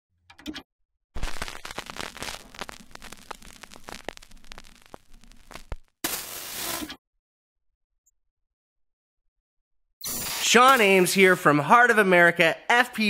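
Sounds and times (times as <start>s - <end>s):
crackling static: 1.2s - 6.9s.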